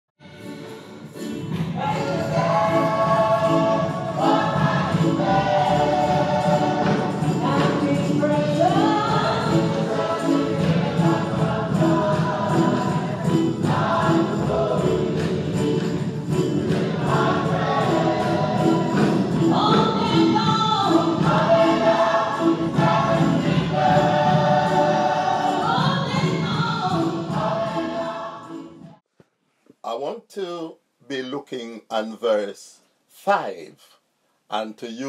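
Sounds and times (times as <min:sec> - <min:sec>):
gospel choir singing: 0:00.2 - 0:29.0
steady beat: 0:01.4 - 0:28.2.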